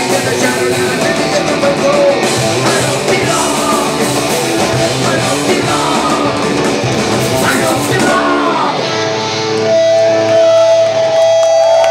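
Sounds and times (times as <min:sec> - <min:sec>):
punk rock band playing: 0:00.0 - 0:11.7
ringing electric guitar tone: 0:00.0 - 0:11.8
shouted vocals: 0:07.3 - 0:09.0.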